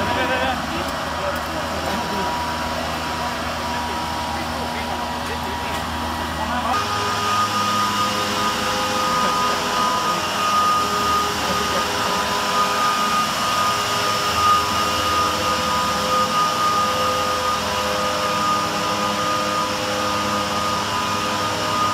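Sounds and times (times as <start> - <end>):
motor drone with high whine: 0.0 - 21.9.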